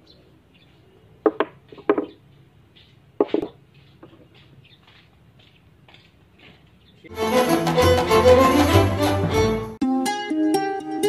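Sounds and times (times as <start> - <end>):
objects knocking on wooden tabletop: 1.2 - 2.2, 3.2 - 3.5.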